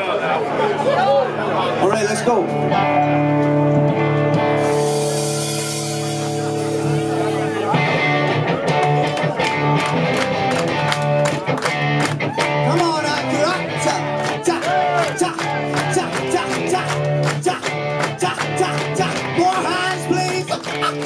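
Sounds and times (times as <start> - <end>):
guitars holding sustained chords: 2.0 - 21.0
rock band playing: 2.0 - 21.0.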